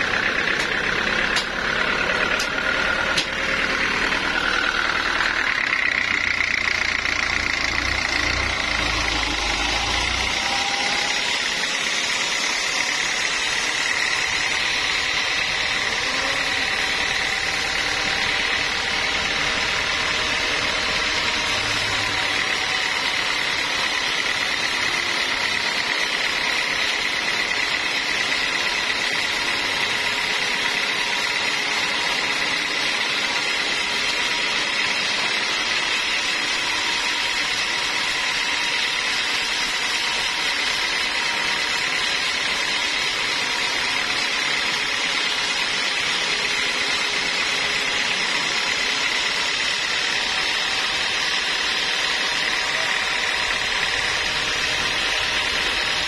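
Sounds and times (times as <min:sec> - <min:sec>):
band saw whine: 0:00.0 - 0:56.0
mechanical hum: 0:00.0 - 0:56.0.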